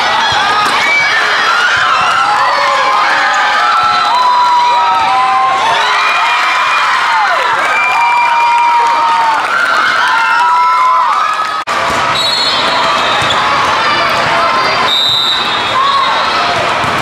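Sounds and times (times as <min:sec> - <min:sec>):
young voices cheering and shouting: 0:00.0 - 0:11.6.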